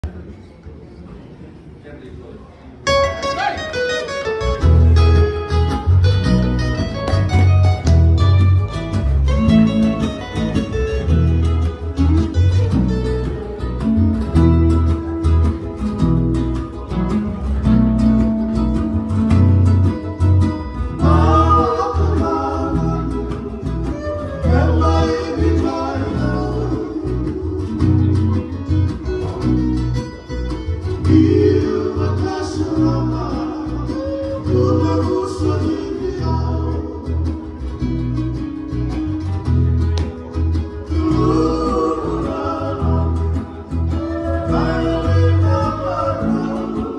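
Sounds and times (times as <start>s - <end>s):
strummed acoustic guitars: 2.8s - 46.9s
ukulele: 2.8s - 46.9s
bass line: 4.2s - 46.9s
men singing: 20.8s - 30.0s, 30.8s - 37.6s, 40.8s - 46.9s.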